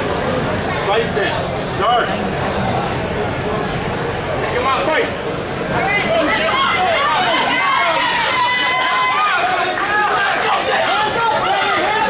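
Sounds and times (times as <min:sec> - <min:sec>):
crowd shouting: 0:05.7 - 0:12.0.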